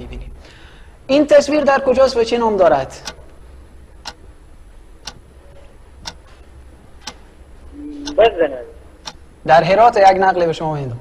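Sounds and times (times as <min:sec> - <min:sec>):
countdown clock ticking: 0:03.0 - 0:03.3, 0:04.0 - 0:04.3, 0:05.0 - 0:05.3, 0:06.0 - 0:06.3, 0:07.8 - 0:08.2, 0:09.0 - 0:09.4.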